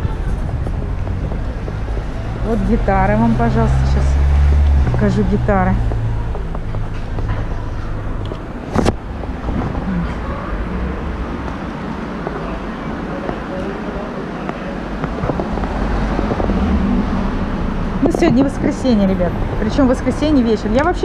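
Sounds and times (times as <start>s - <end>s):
street traffic: 0.0s - 21.0s.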